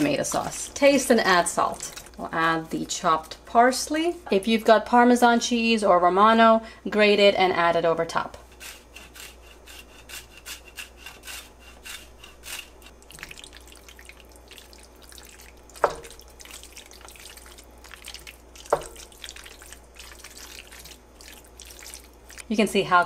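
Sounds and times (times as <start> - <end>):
spoon stirring thick pasta: 0.0 - 3.4, 8.5 - 22.5
cheese grater scraping: 8.4 - 13.0.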